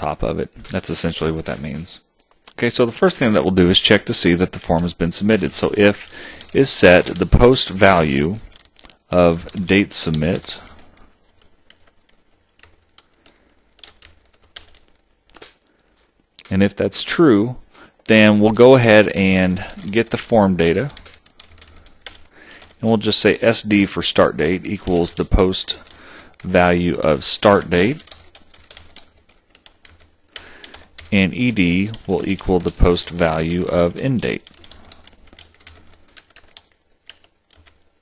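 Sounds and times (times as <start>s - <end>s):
person speaking: 0.0s - 28.2s, 30.0s - 36.5s
computer keyboard typing: 3.1s - 15.7s, 18.1s - 38.0s.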